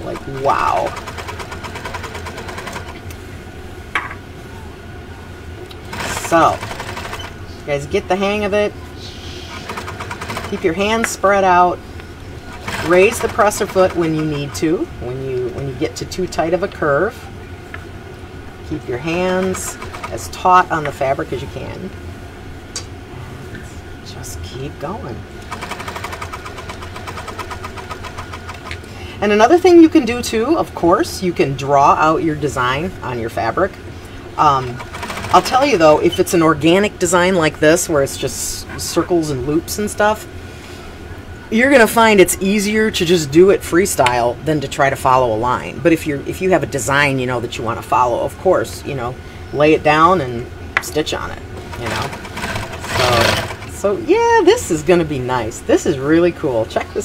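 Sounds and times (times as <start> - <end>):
sewing machine stitching: 0.0 - 3.0, 5.8 - 7.4, 9.5 - 10.8, 12.5 - 14.3, 19.2 - 20.4, 25.4 - 28.7, 34.6 - 35.9, 51.6 - 53.8.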